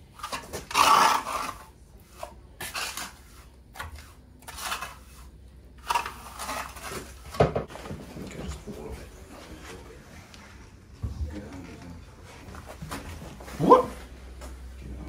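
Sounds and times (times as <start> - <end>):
trowel scraping wet compound: 0.2 - 7.4.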